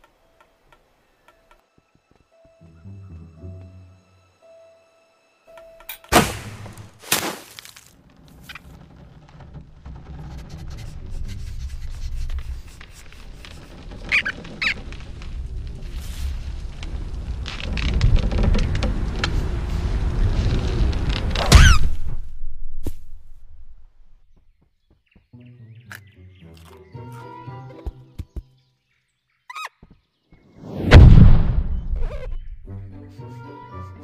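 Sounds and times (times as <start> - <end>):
high cartoon squeaks: 10.4 - 14.9, 21.5 - 21.9, 32.0 - 32.6.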